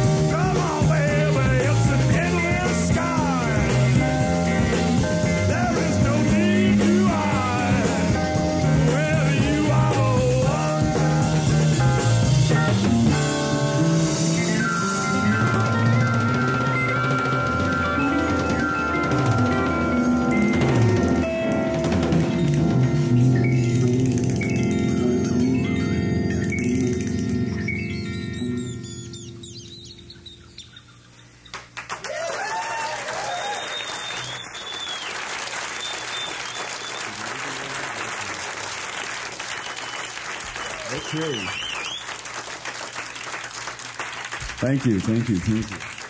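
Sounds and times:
live band music: 0:00.0 - 0:25.8
audience applause: 0:31.5 - 0:46.0
crowd cheering and whistling: 0:32.0 - 0:42.4.

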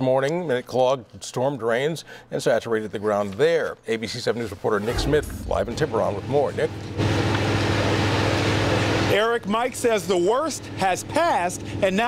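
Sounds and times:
low mechanical hum: 0:04.7 - 0:12.0.

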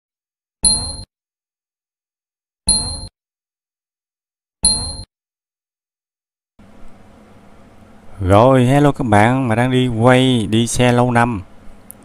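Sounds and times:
short ding sound effects: 0:00.6 - 0:01.1, 0:02.7 - 0:03.1, 0:04.6 - 0:05.1.

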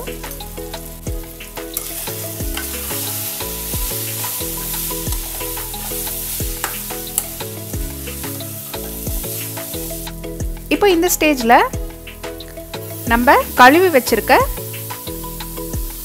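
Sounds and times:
background music with a beat: 0:00.0 - 0:16.0
food sizzling in oil: 0:00.0 - 0:16.0
steel spoon scraping a pan: 0:01.7 - 0:10.2.

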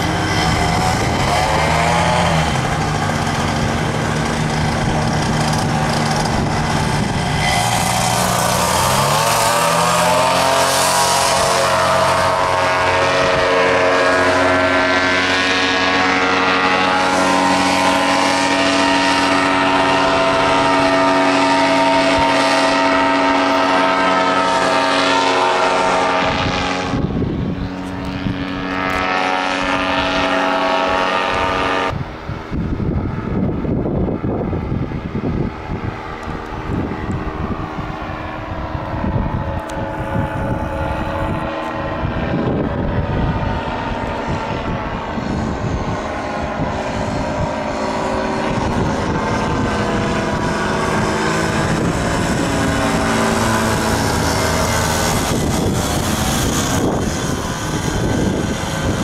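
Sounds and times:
paramotor engines droning overhead: 0:00.0 - 0:59.0.

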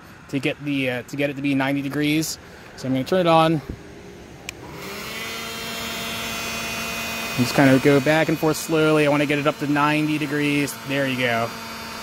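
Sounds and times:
low motor hum: 0:00.0 - 0:12.0
heat gun rushing air: 0:03.5 - 0:12.0.

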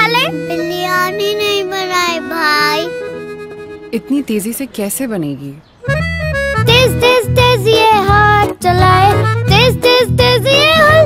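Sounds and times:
soft background music: 0:00.0 - 0:05.1
girl singing sing-song phrase: 0:06.7 - 0:11.0.

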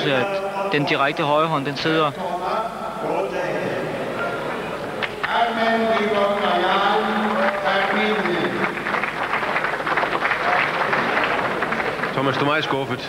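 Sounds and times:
man announcing over public address: 0:00.0 - 0:03.9, 0:05.2 - 0:08.8
crowd noise: 0:00.0 - 0:13.0.

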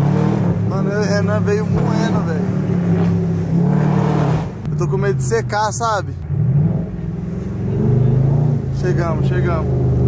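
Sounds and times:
car engine low hum: 0:00.0 - 0:10.0.

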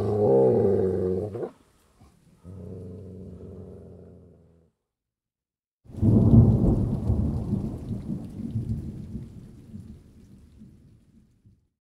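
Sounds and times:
faint hiss: 0:00.0 - 0:04.1
thunderclap rumble: 0:05.9 - 0:11.6.

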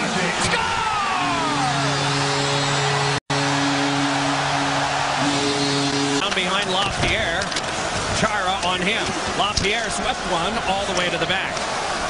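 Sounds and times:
crowd cheering: 0:00.0 - 0:12.0
arena goal horn: 0:01.3 - 0:06.6.

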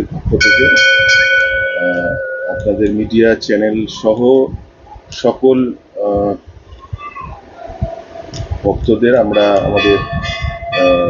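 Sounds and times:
man talking: 0:00.0 - 0:00.9, 0:01.8 - 0:06.4, 0:08.6 - 0:10.2, 0:10.8 - 0:11.0
bell ringing: 0:00.4 - 0:02.9, 0:09.3 - 0:11.0.

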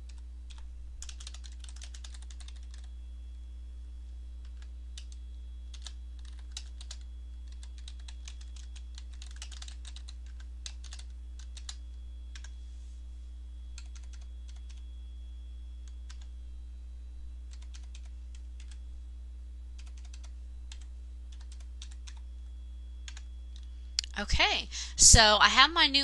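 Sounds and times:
typing on computer keyboard: 0:00.0 - 0:02.9, 0:04.4 - 0:12.5, 0:13.8 - 0:14.8, 0:15.8 - 0:16.3, 0:17.5 - 0:18.8, 0:19.8 - 0:22.2, 0:23.0 - 0:23.6
steady low hum: 0:00.0 - 0:26.0.

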